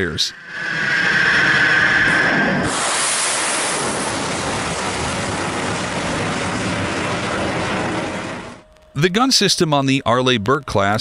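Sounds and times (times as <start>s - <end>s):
rocket exhaust rushing: 0.3s - 8.6s.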